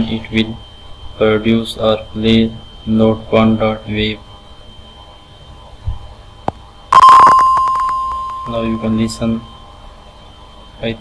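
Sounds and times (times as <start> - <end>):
xylophone note ringing: 7.0 - 9.2.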